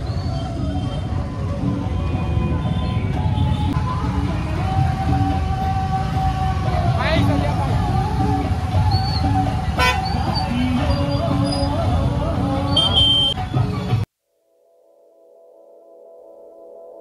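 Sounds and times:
traffic rumble: 0:00.0 - 0:14.0
vehicle horns honking: 0:09.8 - 0:11.7, 0:12.7 - 0:13.6.

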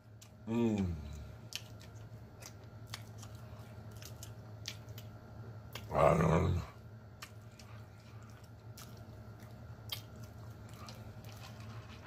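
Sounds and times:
chewing food: 0:00.0 - 0:12.0
low steady hum: 0:00.0 - 0:12.0.

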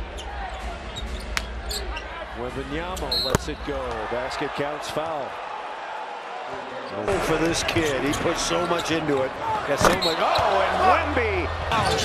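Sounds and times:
arena crowd murmur: 0:00.0 - 0:12.0.

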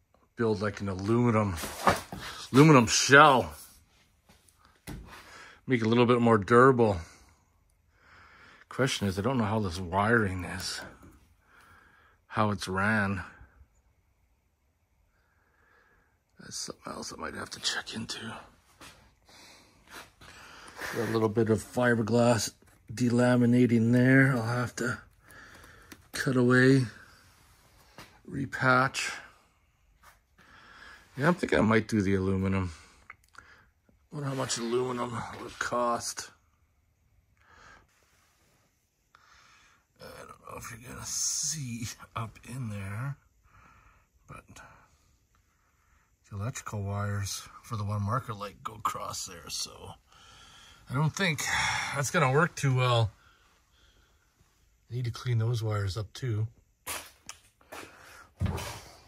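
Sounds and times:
person breathing: 0:05.1 - 0:05.6, 0:07.0 - 0:08.7, 0:11.0 - 0:12.3, 0:15.1 - 0:16.3, 0:18.4 - 0:21.3, 0:25.0 - 0:26.2, 0:30.4 - 0:31.2, 0:37.4 - 0:39.9, 0:43.4 - 0:46.2, 0:50.0 - 0:52.0, 0:53.1 - 0:54.6, 0:57.6 - 0:59.0.

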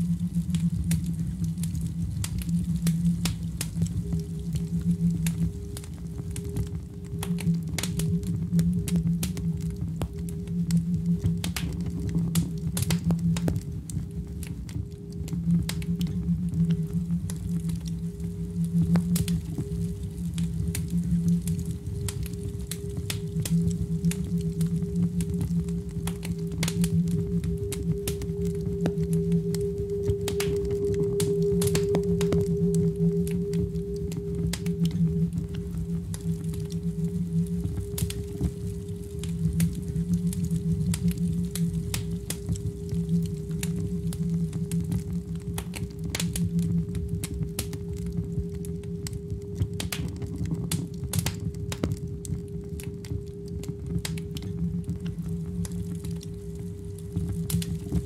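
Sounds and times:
soft clicks and crackles: 0:00.0 - 0:58.0
low electronic drone: 0:15.0 - 0:47.0.

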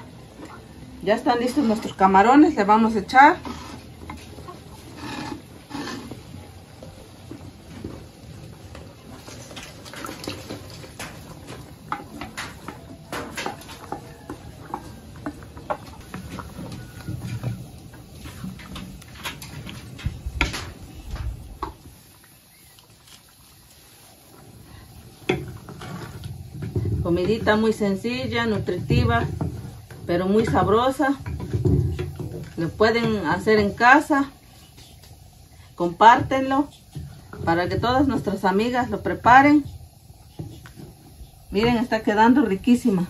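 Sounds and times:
spoon scraping clay pot: 0:03.3 - 0:06.3, 0:25.3 - 0:33.6.

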